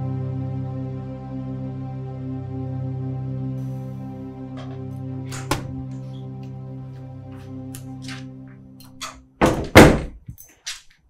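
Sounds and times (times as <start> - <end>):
door banging: 4.6 - 5.8, 9.0 - 10.3.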